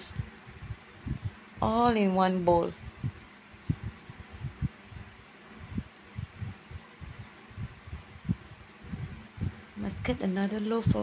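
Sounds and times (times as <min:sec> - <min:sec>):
faint room hiss: 0:00.0 - 0:11.0
soft low thumps and bumps: 0:00.5 - 0:02.0, 0:02.7 - 0:10.2.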